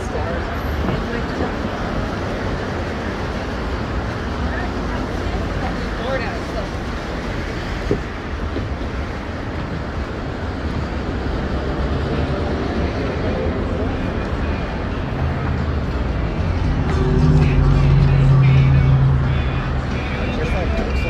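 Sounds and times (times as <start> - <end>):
faint voices of passers-by: 0.0 - 21.0
street traffic rumble: 0.0 - 21.0
deep engine hum: 10.6 - 21.0.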